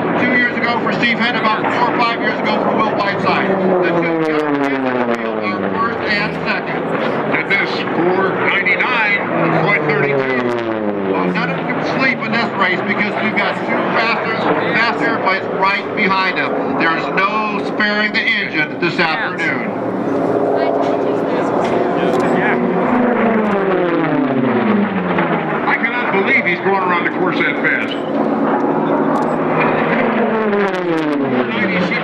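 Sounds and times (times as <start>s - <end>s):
piston aircraft engine drone: 0.0s - 32.0s.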